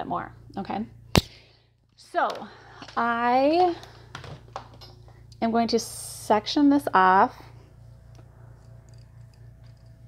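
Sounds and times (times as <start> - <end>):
low pulsing hum: 0.0 - 10.0.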